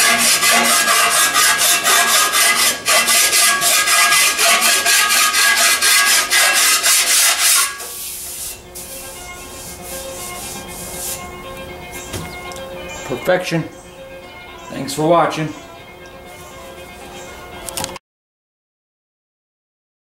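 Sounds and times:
abrasive tool scraping metal: 0.0s - 11.4s.

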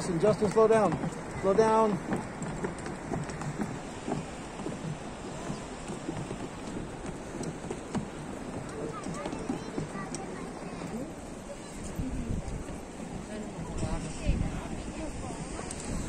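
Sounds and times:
faint voices: 0.0s - 16.0s
wind rumbling on microphone: 0.0s - 16.0s.

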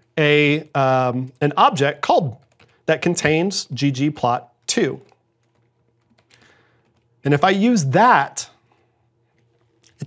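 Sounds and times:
faint keyboard keystrokes: 2.4s - 2.8s, 5.0s - 7.1s.

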